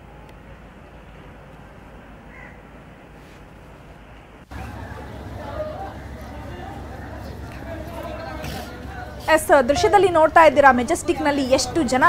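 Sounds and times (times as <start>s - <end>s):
outdoor background noise: 0.0s - 12.0s
harsh bird call: 4.5s - 8.4s.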